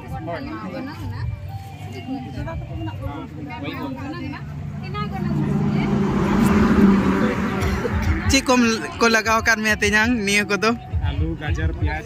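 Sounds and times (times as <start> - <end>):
people talking: 0.0 - 10.7
vehicle engine running: 4.4 - 9.0.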